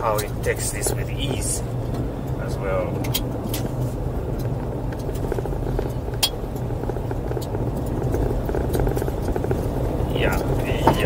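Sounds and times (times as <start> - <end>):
gravel ticks: 0.0 - 11.0
vehicle driving on gravel: 0.0 - 11.0.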